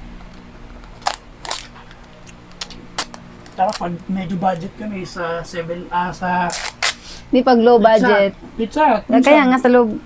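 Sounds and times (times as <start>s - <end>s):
low steady hum: 0.0s - 10.0s
plastic packaging crackling: 0.4s - 4.7s, 6.4s - 7.0s.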